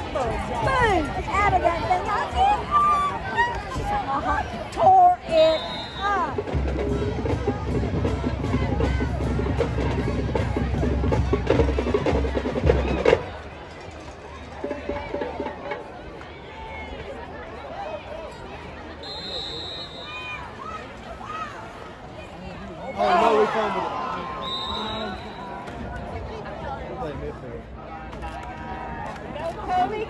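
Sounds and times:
crowd chatter: 0.0 - 30.0
high whistle blast: 19.0 - 20.4, 24.4 - 25.6.

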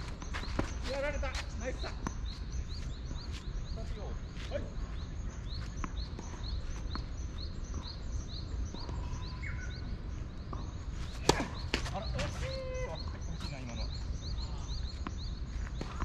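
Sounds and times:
bird chirping: 0.0 - 16.0.

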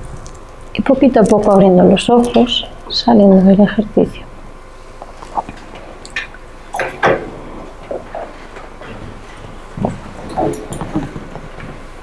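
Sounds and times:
people shifting in seats: 6.8 - 12.0.

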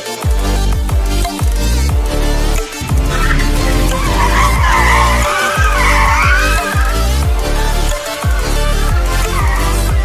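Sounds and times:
dubstep music: 0.0 - 10.0
tyres squealing: 2.7 - 10.0.

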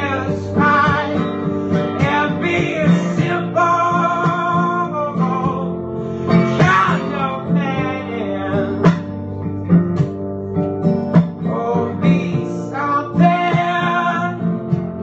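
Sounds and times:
man singing: 0.0 - 9.2, 11.4 - 15.0
acoustic guitar strumming: 0.0 - 15.0.

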